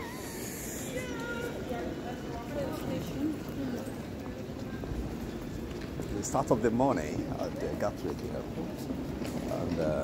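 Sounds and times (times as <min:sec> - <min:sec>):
people talking: 0:00.8 - 0:04.3.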